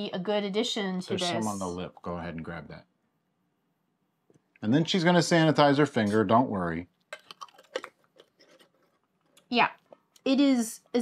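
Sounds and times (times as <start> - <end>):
mouth clicks and lip smacks: 7.0 - 8.6.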